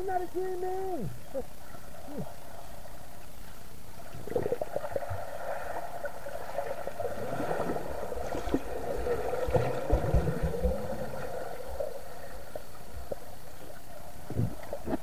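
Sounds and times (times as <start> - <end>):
underwater churning and bubbling: 1.1 - 15.0
low thumps underwater: 7.2 - 11.3, 14.2 - 15.0.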